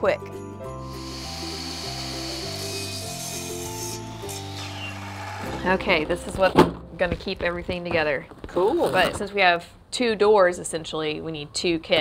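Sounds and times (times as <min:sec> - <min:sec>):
background music: 0:00.0 - 0:08.3
miter saw cutting wood: 0:00.8 - 0:05.6.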